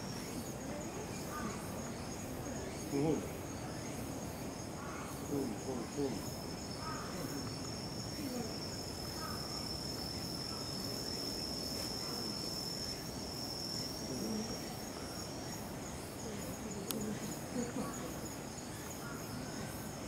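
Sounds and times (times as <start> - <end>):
insects singing: 0.0 - 20.0.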